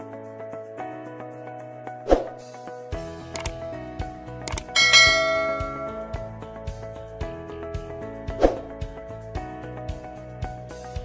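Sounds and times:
background music: 0.0s - 11.0s
short clicks: 3.3s - 3.6s, 4.5s - 4.8s
bright bell chime: 4.5s - 6.4s.

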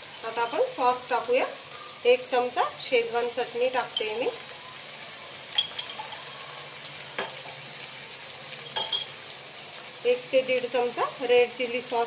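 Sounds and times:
vegetables sizzling in oil: 0.0s - 12.0s
steel spoon clinking on pan: 5.5s - 6.4s, 8.6s - 9.2s.

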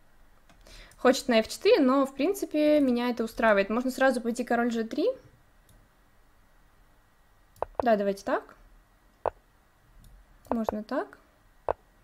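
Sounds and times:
computer mouse click: 7.6s - 7.9s.

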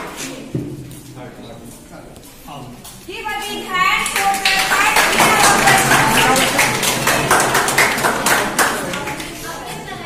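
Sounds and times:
voices: 1.3s - 10.0s
audience applauding: 4.0s - 9.4s.

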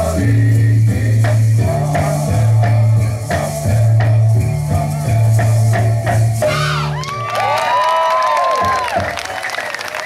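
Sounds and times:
live band playing: 1.2s - 7.1s
crowd cheering and whooping: 6.4s - 10.0s.

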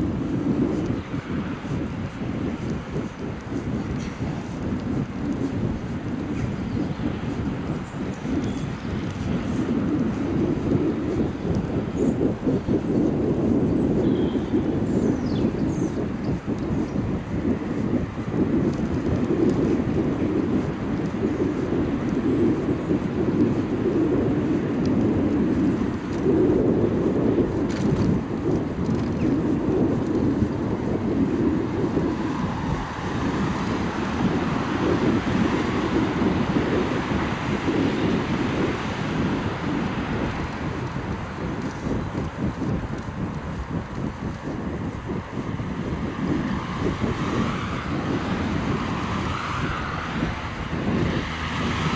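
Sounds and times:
bicycle tyres on asphalt: 0.0s - 51.9s
wind buffeting microphone: 0.0s - 51.9s.

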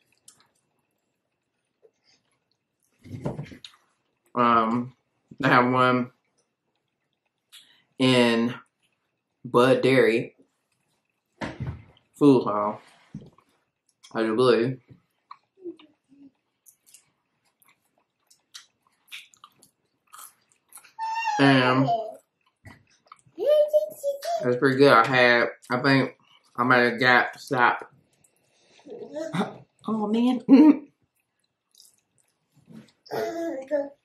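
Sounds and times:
person chewing crunchy food: 15.0s - 21.0s, 22.2s - 23.4s, 31.0s - 33.0s.

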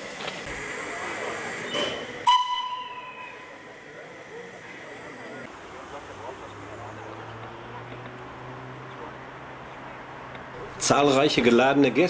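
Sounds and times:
steam hissing: 0.0s - 7.8s
steam locomotive whistle: 0.6s - 3.9s.

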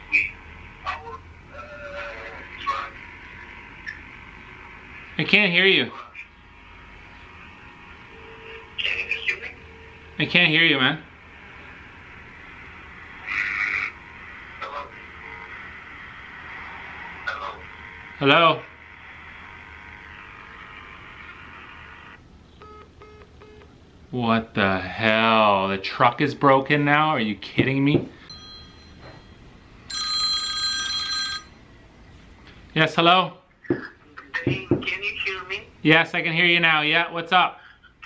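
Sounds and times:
phone line hiss: 8.1s - 10.2s
phone ringtone: 22.6s - 23.6s, 28.2s - 31.6s.

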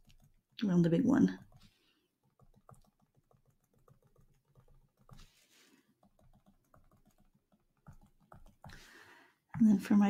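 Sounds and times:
faint rapid clicking and tapping: 0.0s - 10.0s
soft rustle: 5.2s - 5.9s.

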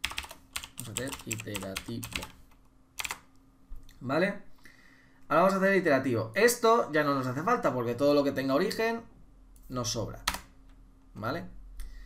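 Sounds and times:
keyboard keys clicking: 0.0s - 2.3s, 3.0s - 3.2s.

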